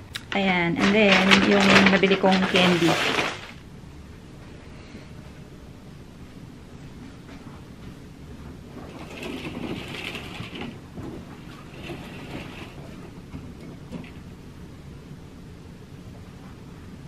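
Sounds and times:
low room hum: 0:00.0 - 0:17.0
curtains sliding along track: 0:00.8 - 0:03.6, 0:08.7 - 0:14.2.

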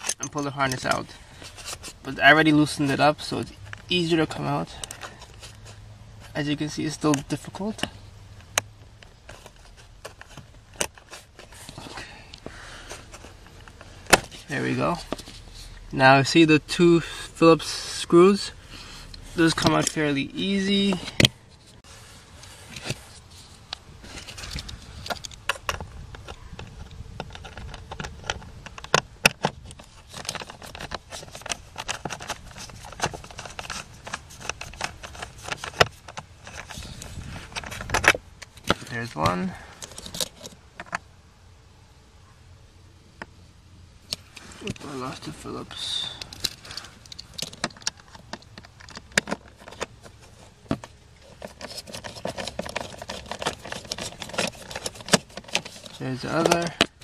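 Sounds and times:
plastic connector clicks and rattles: 0:24.3 - 0:36.8, 0:46.2 - 0:57.0.

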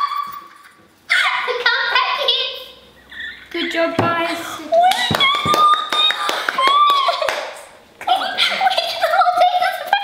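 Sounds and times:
children squealing: 0:00.0 - 0:01.5
hands clapping: 0:04.9 - 0:07.7.

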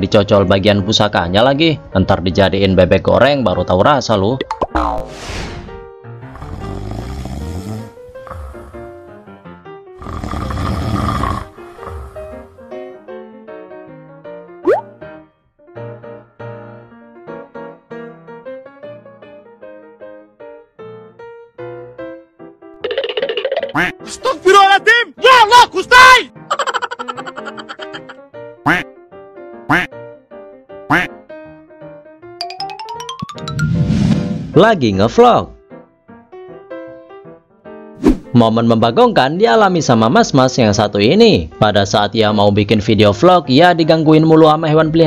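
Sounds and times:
light background music: 0:00.0 - 0:22.6, 0:23.4 - 0:30.3, 0:30.9 - 0:45.0
light bouncy music: 0:04.3 - 0:05.0, 0:14.6 - 0:15.2, 0:22.8 - 0:28.9, 0:32.4 - 0:33.8
person snoring: 0:06.3 - 0:09.0, 0:10.0 - 0:12.6
duck quacking: 0:27.0 - 0:28.8, 0:29.7 - 0:29.9, 0:30.9 - 0:31.1.

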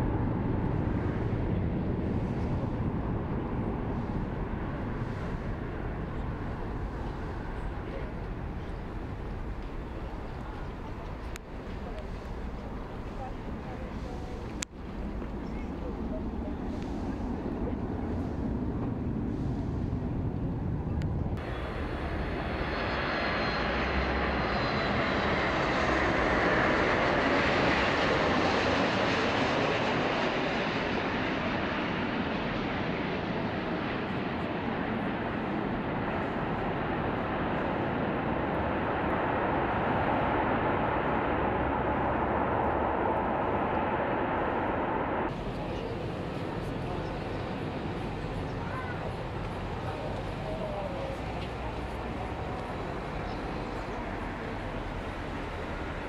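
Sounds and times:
jet engine rushing noise: 0:15.4 - 0:56.0
faint high whine: 0:20.9 - 0:25.7.

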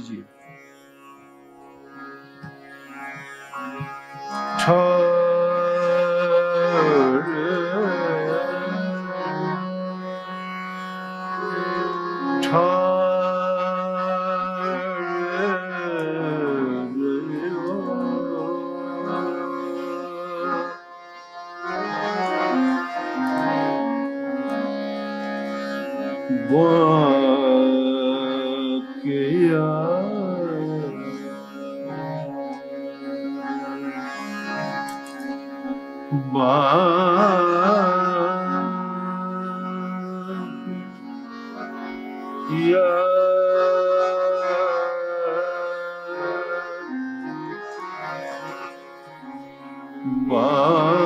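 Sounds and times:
harmonium notes: 0:00.0 - 0:51.0
tanpura drone: 0:00.0 - 0:51.0
man singing: 0:04.4 - 0:09.9, 0:11.4 - 0:20.8, 0:26.0 - 0:34.3, 0:35.6 - 0:41.4, 0:42.4 - 0:48.2, 0:50.0 - 0:51.0.

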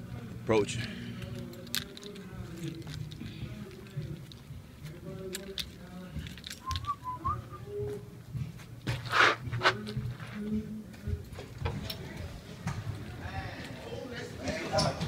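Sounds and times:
person whistling: 0:06.6 - 0:07.8.

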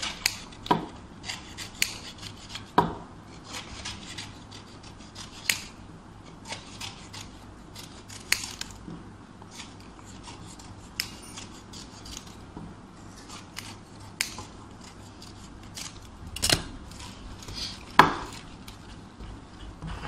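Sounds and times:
scissors snipping paper: 0:00.0 - 0:02.8, 0:03.4 - 0:08.8, 0:09.5 - 0:12.5, 0:13.1 - 0:19.0
paper rustling: 0:14.8 - 0:19.0.

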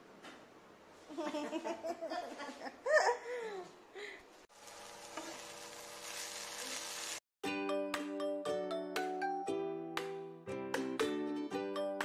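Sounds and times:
vegetables sizzling in oil: 0:04.5 - 0:07.2
music with chiming notes: 0:07.4 - 0:12.0.

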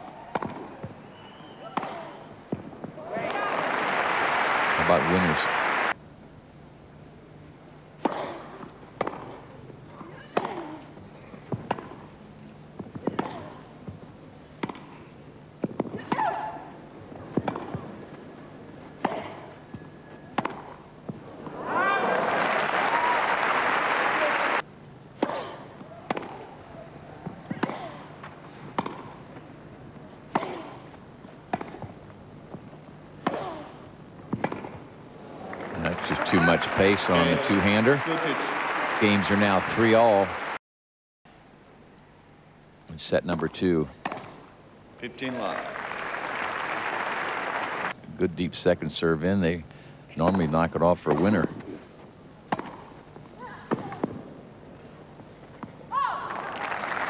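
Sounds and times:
crowd applause: 0:03.2 - 0:06.0, 0:21.5 - 0:24.6, 0:35.3 - 0:40.6, 0:45.3 - 0:47.9, 0:56.3 - 0:57.0
tennis racket striking ball: 0:08.0 - 0:09.4, 0:11.5 - 0:12.0, 0:14.6 - 0:14.9, 0:17.3 - 0:17.8, 0:19.0 - 0:19.4, 0:20.3 - 0:21.2, 0:25.2 - 0:26.6, 0:27.2 - 0:29.2, 0:30.3 - 0:34.8, 0:44.0 - 0:44.5, 0:52.5 - 0:53.0.

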